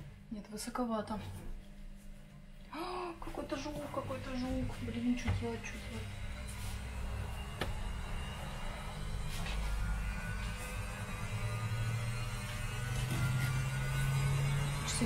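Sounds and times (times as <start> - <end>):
washing machine humming: 0.0 - 15.0.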